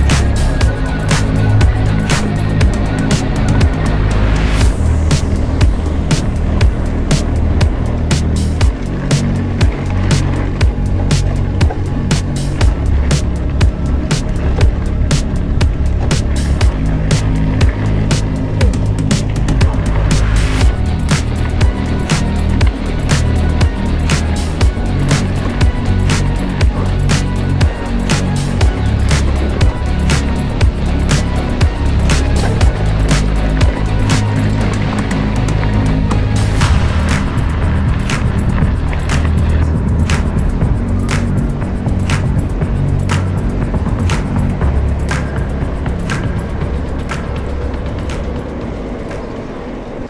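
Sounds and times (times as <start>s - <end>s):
music with drum beat and bass: 0.0s - 49.5s.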